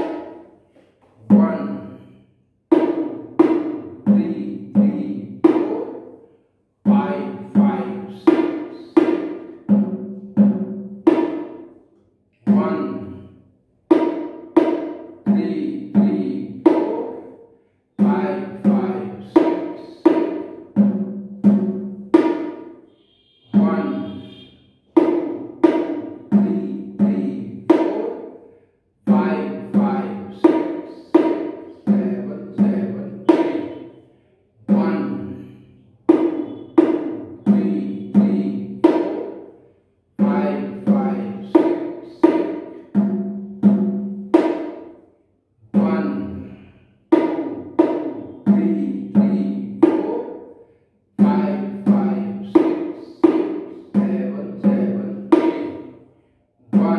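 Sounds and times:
bongo drums played by hand: 0:00.0 - 0:00.5, 0:02.7 - 0:06.1, 0:06.9 - 0:11.7, 0:13.8 - 0:17.3, 0:18.0 - 0:22.8, 0:23.5 - 0:28.4, 0:29.1 - 0:33.9, 0:34.7 - 0:35.2, 0:36.0 - 0:39.5, 0:40.2 - 0:45.0, 0:47.1 - 0:50.6, 0:51.2 - 0:56.0.

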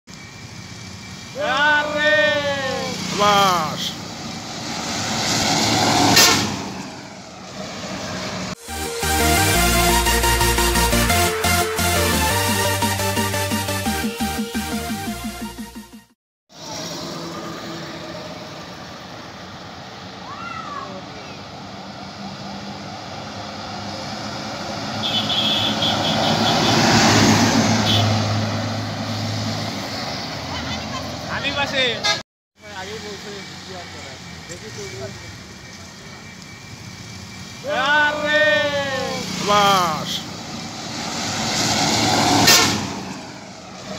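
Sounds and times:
bus passing by: 0:00.1 - 0:13.8, 0:16.5 - 0:43.9.

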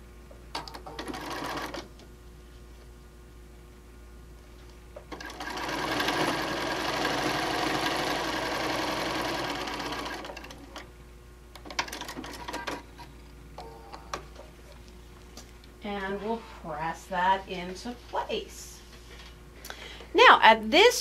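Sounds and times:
sewing machine stitching: 0:00.9 - 0:01.8, 0:05.1 - 0:10.8.

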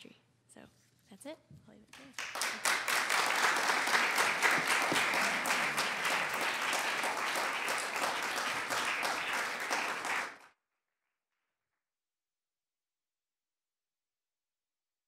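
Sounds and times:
audience applauding: 0:02.0 - 0:10.5.

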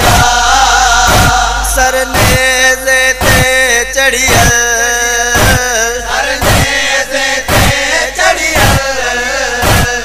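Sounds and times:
heavy beat: 0:00.0 - 0:08.9, 0:09.6 - 0:10.0
men chanting a lament: 0:00.0 - 0:10.0.

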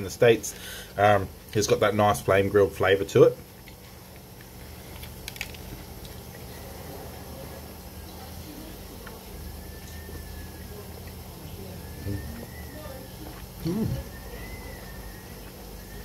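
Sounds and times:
man chewing a burger: 0:03.4 - 0:08.0, 0:09.0 - 0:12.6, 0:13.2 - 0:16.0
low hum: 0:03.6 - 0:16.0.

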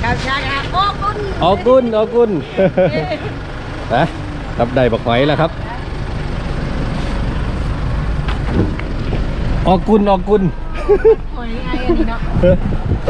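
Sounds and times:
low vehicle engine rumble: 0:00.0 - 0:13.0.

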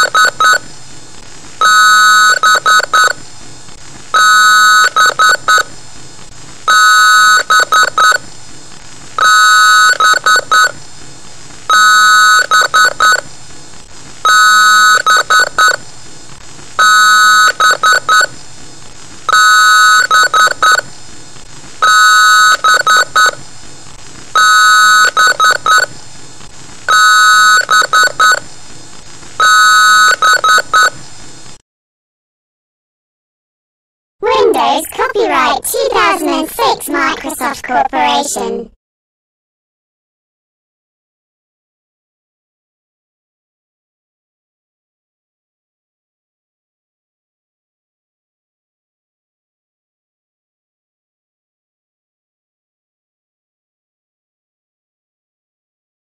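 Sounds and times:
distorted electronic beeps: 0:34.2 - 0:38.5.

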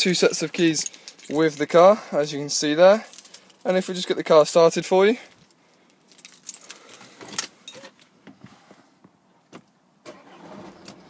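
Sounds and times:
car keys jangling: 0:00.0 - 0:01.8, 0:02.9 - 0:03.8, 0:06.0 - 0:08.0.

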